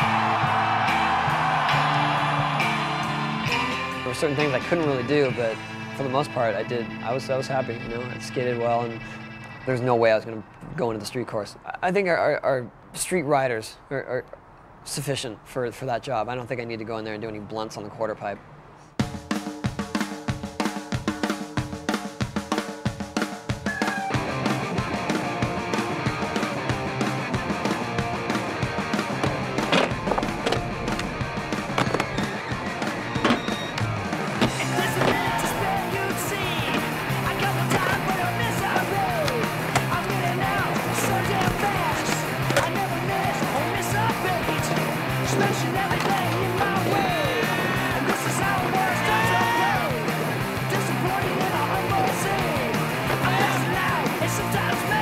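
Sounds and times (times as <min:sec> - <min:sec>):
skateboards rolling on concrete: 0:00.0 - 0:05.3, 0:23.7 - 0:55.0
music with drum beat: 0:19.0 - 0:55.0
skateboard clacks and landings: 0:29.2 - 0:35.7.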